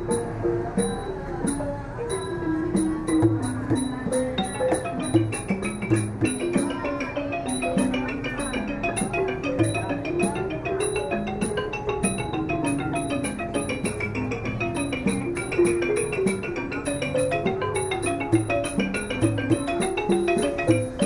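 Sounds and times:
xylophone playing fast runs: 0.0s - 21.0s.

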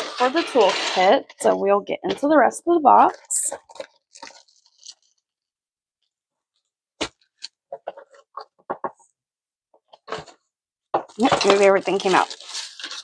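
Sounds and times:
plastic rustling and crinkling: 0.0s - 5.5s, 6.5s - 9.1s, 9.8s - 13.0s.

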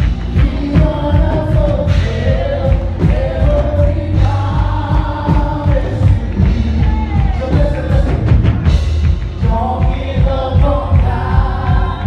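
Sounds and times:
vocalists singing together: 0.0s - 8.8s, 9.4s - 12.0s
bass guitar: 0.0s - 12.0s
steady drum beat: 0.0s - 12.0s.

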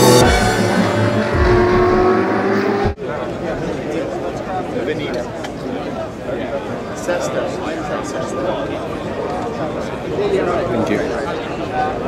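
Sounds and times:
car engine accelerating: 0.0s - 3.0s
crowd chatter: 0.0s - 12.0s.

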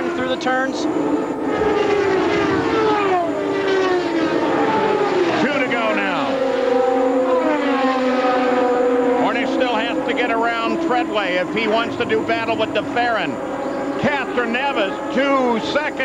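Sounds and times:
race car engines passing: 0.0s - 16.0s.

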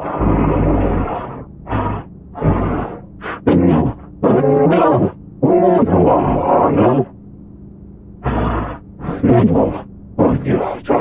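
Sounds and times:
steady low hum: 0.0s - 11.0s
creature calls with wavering pitch: 8.3s - 11.0s.

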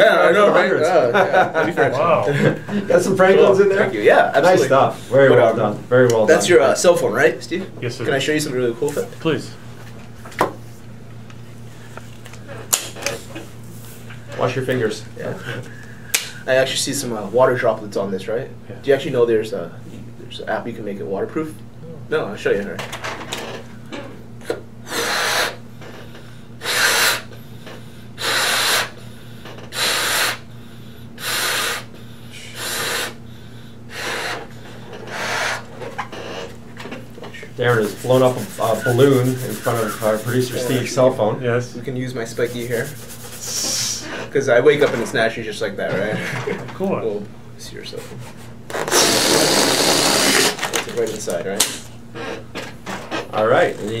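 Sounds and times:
puffs of breath into balloon: 24.9s - 25.6s, 26.6s - 27.3s, 27.9s - 35.6s, 43.4s - 44.3s
hands rubbing a balloon: 37.6s - 40.9s, 42.4s - 44.0s.

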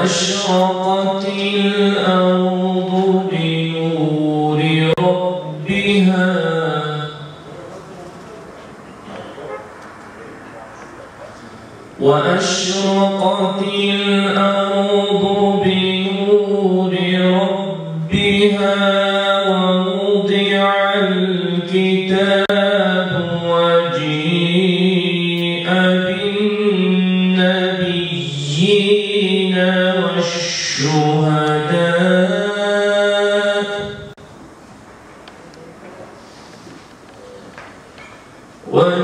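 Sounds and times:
man chanting religious recitation: 0.0s - 34.2s, 38.6s - 39.0s.

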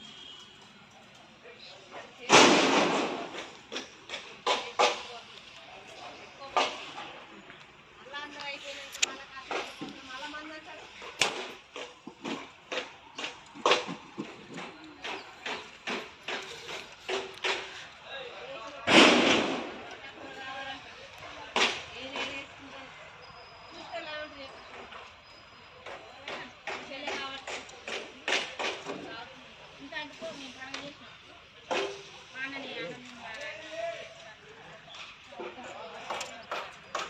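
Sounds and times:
voices talking: 0.0s - 37.0s
sharp knocks and clanks: 11.0s - 18.0s, 25.8s - 29.1s.

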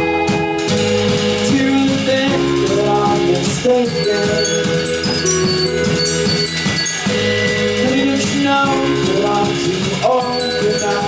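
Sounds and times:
drum strokes: 0.0s - 11.0s
rock band playing slow song: 0.0s - 11.0s
sustained keyboard chords: 0.0s - 11.0s.

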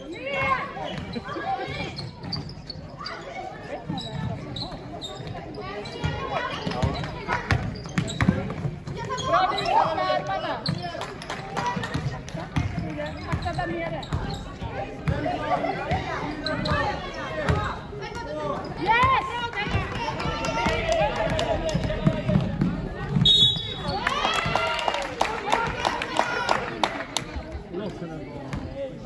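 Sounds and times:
basketball bouncing on hall floor: 3.9s - 9.3s, 18.9s - 24.6s.

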